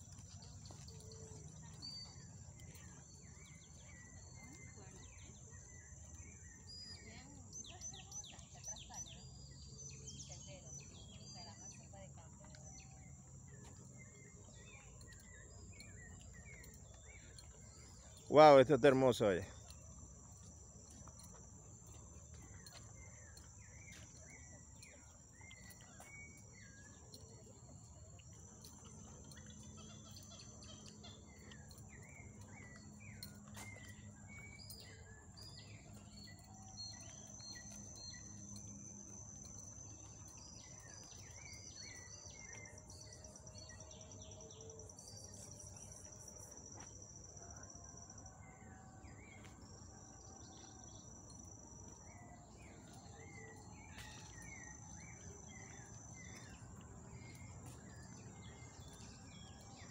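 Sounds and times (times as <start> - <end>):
birds chirping: 0.0 - 46.6, 52.0 - 59.9
insects high-pitched whine: 0.0 - 59.9
insect trills: 14.0 - 48.4.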